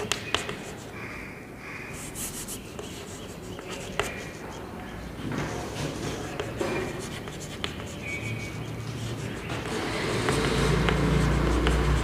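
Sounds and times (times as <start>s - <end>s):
chalk scratching on blackboard: 1.9s - 12.0s.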